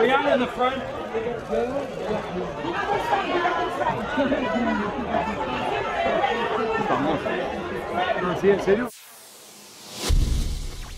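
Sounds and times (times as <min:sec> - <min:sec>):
crowd chatter: 0:00.0 - 0:08.9.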